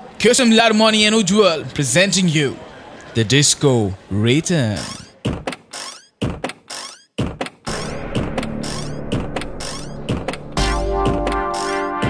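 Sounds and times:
thudding percussion hits: 0:07.2 - 0:12.0.

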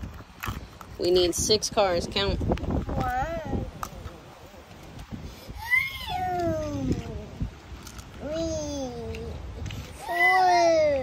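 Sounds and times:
child whining: 0:05.5 - 0:07.4, 0:08.2 - 0:11.0.

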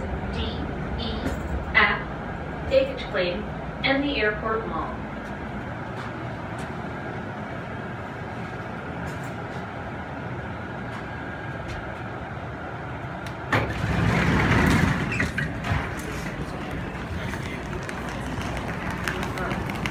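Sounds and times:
tram humming: 0:00.0 - 0:19.9
sliding doors opening: 0:13.2 - 0:18.7.

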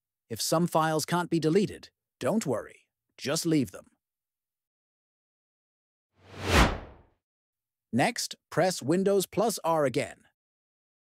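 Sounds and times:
whoosh sound effect: 0:06.3 - 0:07.0.

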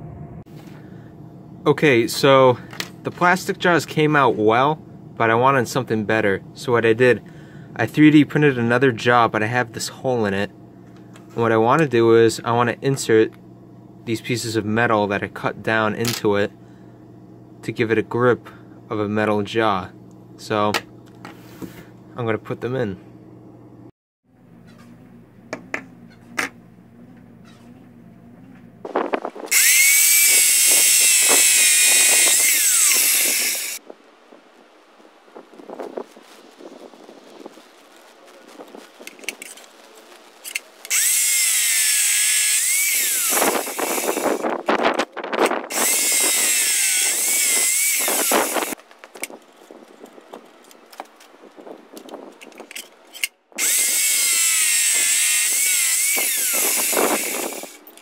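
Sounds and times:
cut-off saw cutting steel: 0:29.5 - 0:33.8, 0:40.8 - 0:44.5, 0:45.7 - 0:48.8, 0:53.6 - 0:57.9.

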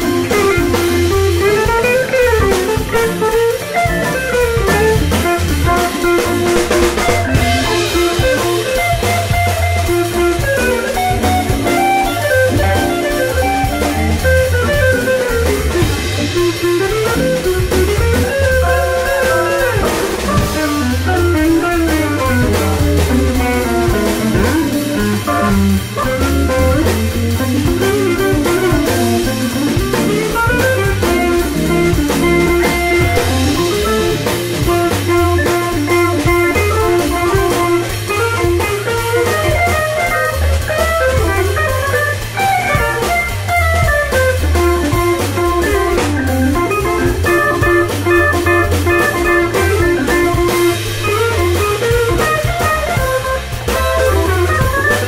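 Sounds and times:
electric guitar lead lines: 0:00.0 - 0:55.0
organ bass and chords: 0:00.0 - 0:55.0
steady drum beat: 0:00.0 - 0:55.0.

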